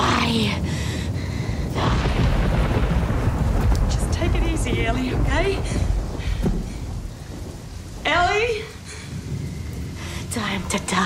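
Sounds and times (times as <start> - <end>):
steady rain: 0.0 - 11.0
thunder rumbling: 0.0 - 11.0.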